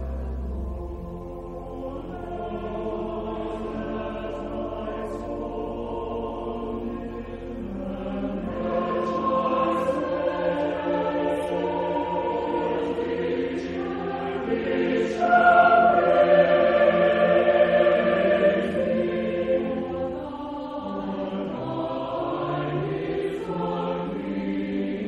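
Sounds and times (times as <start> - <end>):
church choir singing: 0.0 - 25.0.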